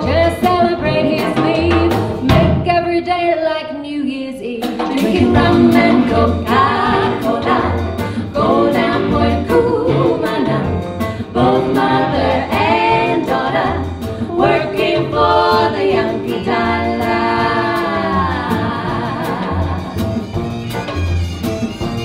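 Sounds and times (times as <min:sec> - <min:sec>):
women singing in close harmony: 0:00.0 - 0:02.4, 0:04.9 - 0:19.9
drum kit beat: 0:00.0 - 0:03.0, 0:04.5 - 0:22.0
big band playing: 0:00.0 - 0:03.4, 0:04.4 - 0:22.0.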